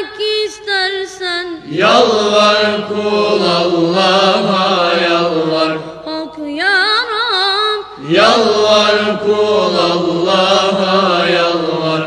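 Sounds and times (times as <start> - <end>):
group of voices chanting a hymn: 1.6 - 6.4, 7.9 - 12.0.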